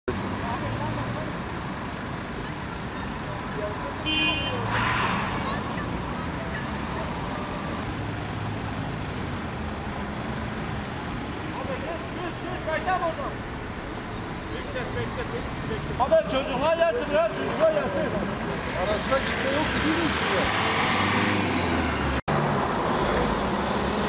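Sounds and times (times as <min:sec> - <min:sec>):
road traffic noise: 0:00.0 - 0:24.0
car horn toot: 0:04.0 - 0:04.8.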